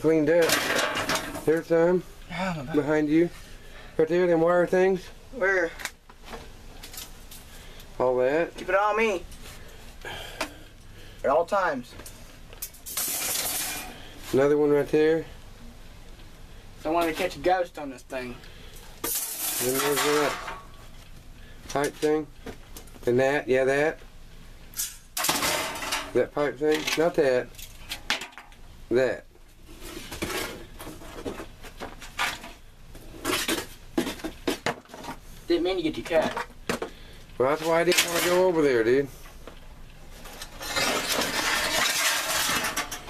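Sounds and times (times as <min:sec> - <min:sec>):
debris scraping and rustling: 0:00.3 - 0:02.0, 0:12.6 - 0:14.6, 0:19.0 - 0:21.0, 0:29.6 - 0:35.3, 0:37.5 - 0:38.6, 0:40.1 - 0:43.0
scrap metal clattering: 0:00.4 - 0:01.6, 0:12.6 - 0:14.0, 0:19.0 - 0:20.7, 0:24.8 - 0:26.2, 0:37.6 - 0:38.5, 0:40.3 - 0:43.0.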